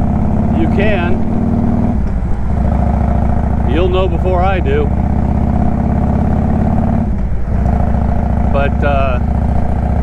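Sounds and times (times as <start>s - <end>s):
motorcycle engine cruising: 0.0s - 10.0s.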